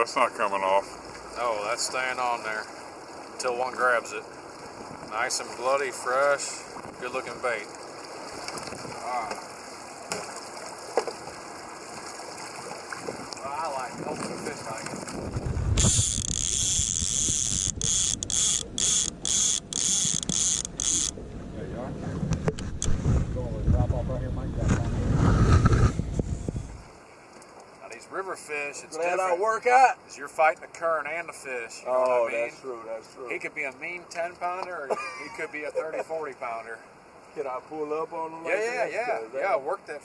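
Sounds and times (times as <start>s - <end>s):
wind buffeting microphone: 8.5s - 9.0s, 12.9s - 26.9s.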